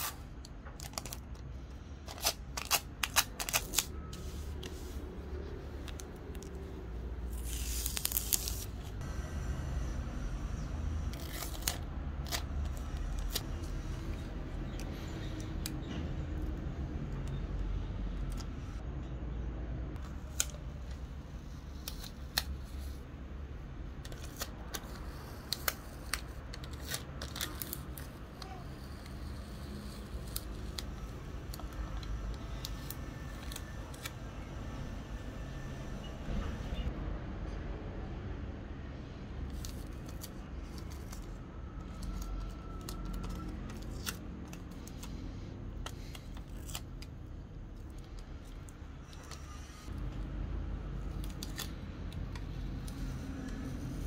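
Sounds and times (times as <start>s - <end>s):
steady low hum: 0.0s - 37.3s
plastic film crinkling: 7.2s - 9.0s, 24.0s - 34.1s.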